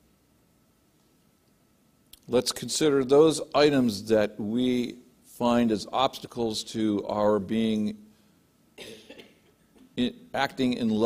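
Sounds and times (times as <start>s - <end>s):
person coughing: 8.8s - 10.0s.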